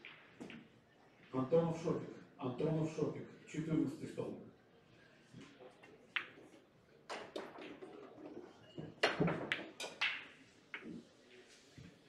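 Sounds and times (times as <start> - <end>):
pool balls clicking: 5.7 - 11.0.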